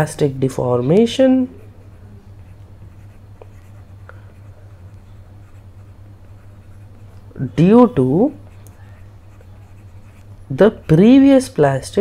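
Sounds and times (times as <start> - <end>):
steady low hum: 0.0 - 12.0
stylus scratching on tablet screen: 1.4 - 11.6.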